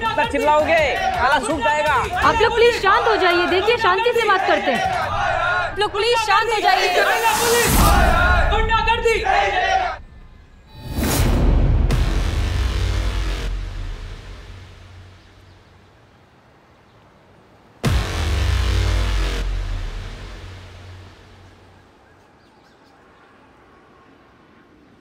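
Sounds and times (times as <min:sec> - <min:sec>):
dramatic music sting: 0:10.0 - 0:15.4, 0:17.8 - 0:21.8.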